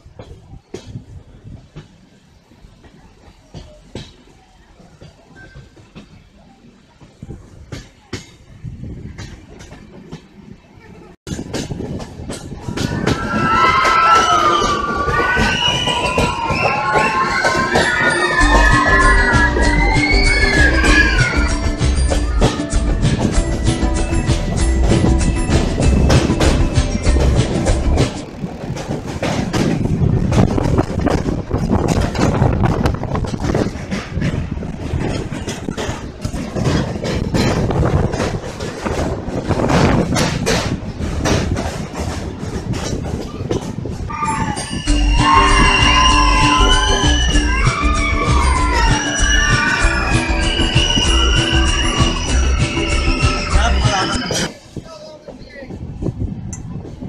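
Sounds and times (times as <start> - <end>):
train rumbling: 0.0 - 57.0
wheels clattering on rails: 0.0 - 57.0
background music: 16.9 - 28.5, 44.5 - 54.5.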